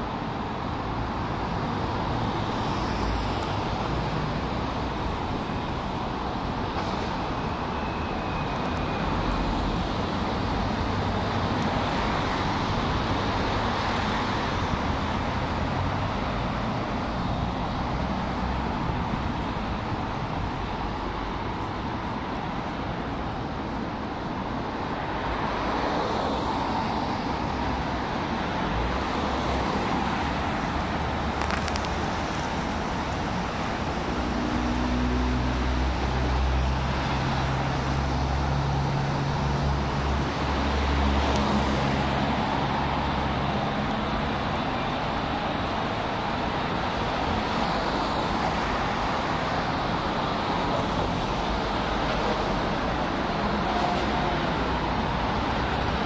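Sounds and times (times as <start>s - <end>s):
road traffic passing: 0.0s - 56.0s.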